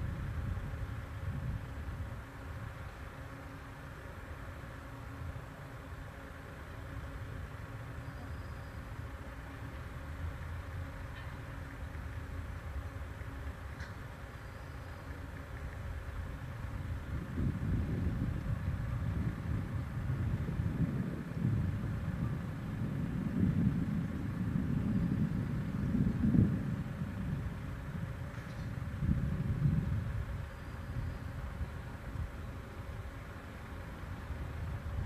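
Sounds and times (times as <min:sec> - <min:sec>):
wind buffeting microphone: 0:00.0 - 0:03.0, 0:15.2 - 0:35.0.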